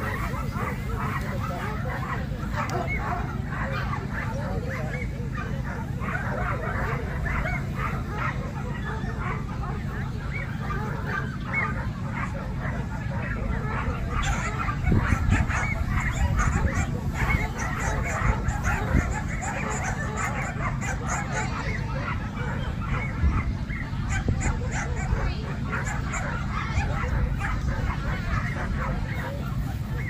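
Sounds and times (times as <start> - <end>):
dogs barking in high yaps: 0.0 - 30.0
wind rumble on microphone: 0.0 - 30.0.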